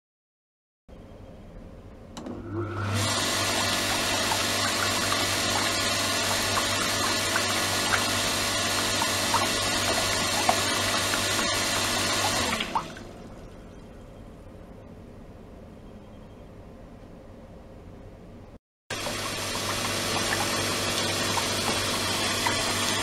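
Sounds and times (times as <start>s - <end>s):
pump motor hum: 2.2s - 13.8s, 18.9s - 23.0s
water splashing into tub: 3.0s - 13.5s, 18.9s - 23.0s.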